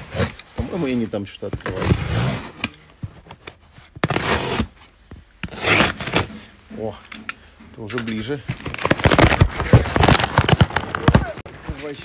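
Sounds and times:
packing tape ripping: 0:05.4 - 0:06.3, 0:08.6 - 0:11.4.

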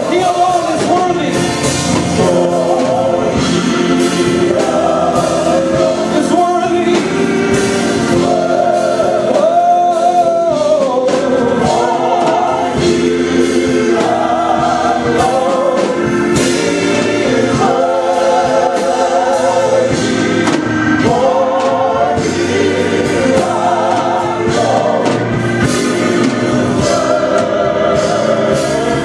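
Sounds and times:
group singing gospel in harmony: 0:00.0 - 0:29.0
sustained keyboard chords: 0:00.0 - 0:29.0.

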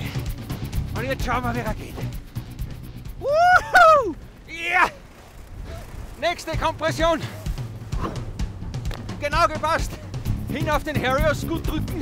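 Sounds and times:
wind noise: 0:00.0 - 0:12.0
person whooping: 0:03.2 - 0:05.0.

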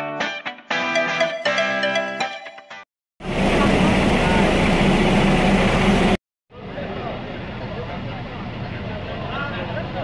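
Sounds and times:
loud steady low hum: 0:03.2 - 0:06.2.

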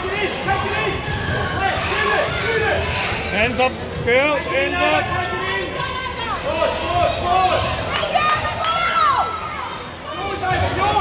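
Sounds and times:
shouting voices: 0:00.0 - 0:11.0.

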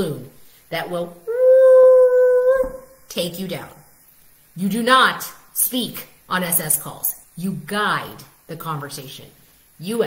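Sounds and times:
people talking: 0:00.0 - 0:01.2, 0:03.1 - 0:03.8, 0:04.6 - 0:10.0
high-pitched howl: 0:01.3 - 0:02.9.

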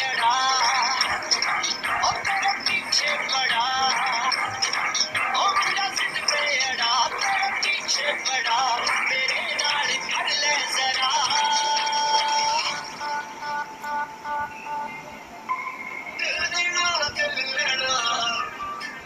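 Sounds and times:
person singing: 0:00.0 - 0:15.0, 0:16.2 - 0:19.0
backing music: 0:00.0 - 0:19.0.

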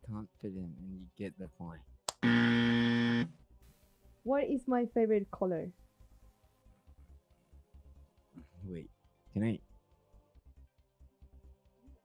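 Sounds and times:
game show buzzer: 0:02.2 - 0:03.3.

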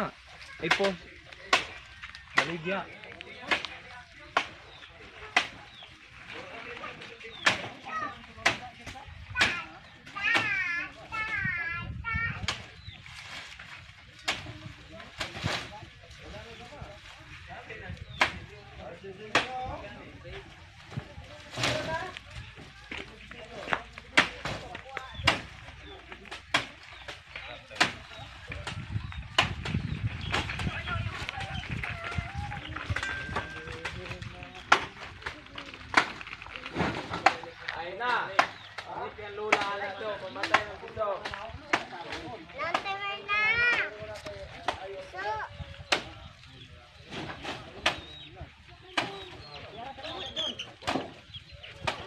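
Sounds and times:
people talking: 0:00.0 - 0:12.9, 0:14.0 - 0:52.0
sugarcane stalks knocking: 0:00.6 - 0:10.6, 0:12.4 - 0:15.8, 0:17.9 - 0:18.6, 0:19.2 - 0:19.8, 0:20.8 - 0:43.0, 0:45.8 - 0:46.2, 0:47.1 - 0:48.2, 0:49.0 - 0:49.4, 0:50.8 - 0:52.0
sugarcane bundles dropped knocking: 0:20.8 - 0:31.8.

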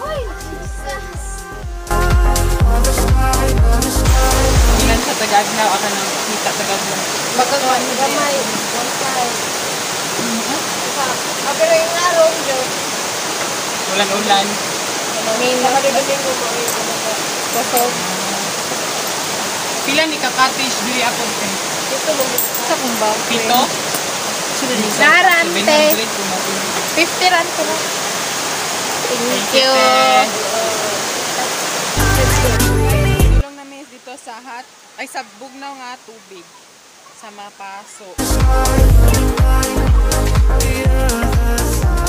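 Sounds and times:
rushing water hiss: 0:00.0 - 0:42.0
person speaking: 0:15.2 - 0:18.6, 0:19.8 - 0:27.8, 0:29.1 - 0:30.9, 0:38.2 - 0:41.7.

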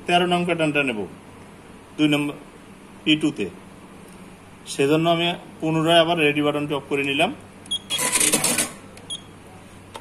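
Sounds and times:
electronic key beep: 0:07.7 - 0:08.3, 0:09.1 - 0:09.3.

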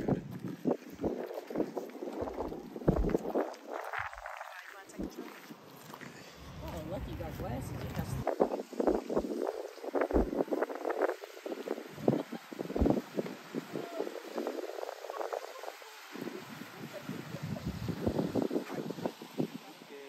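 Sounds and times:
wind gusting over microphone: 0:00.0 - 0:19.9.

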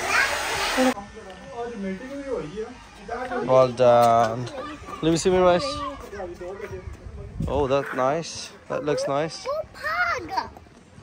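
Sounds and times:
children's voices: 0:00.0 - 0:01.0, 0:04.4 - 0:07.1, 0:08.8 - 0:10.9
hair dryer blowing: 0:00.0 - 0:01.0.

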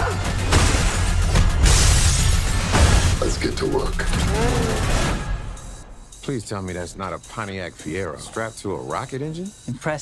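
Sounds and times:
trailer music and sound effects: 0:00.0 - 0:10.0.

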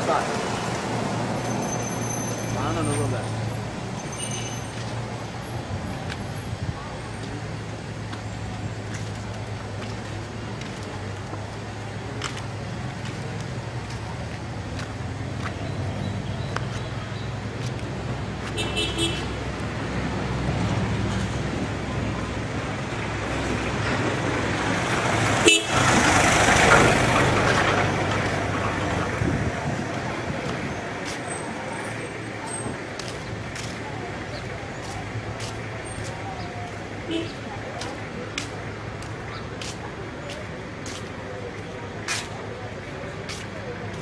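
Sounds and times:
engine hum: 0:04.7 - 0:44.0
vehicle passing: 0:07.5 - 0:44.0
horn toot: 0:25.4 - 0:25.9.

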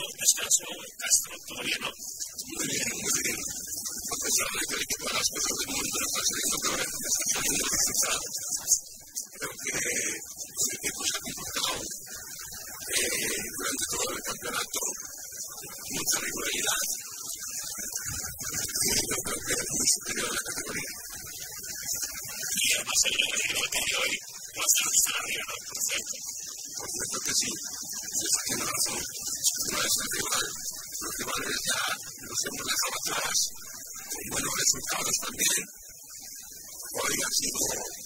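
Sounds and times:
indistinct speech: 0:00.0 - 0:21.1, 0:21.7 - 0:35.8, 0:36.7 - 0:38.0
steady hiss: 0:00.0 - 0:38.0.

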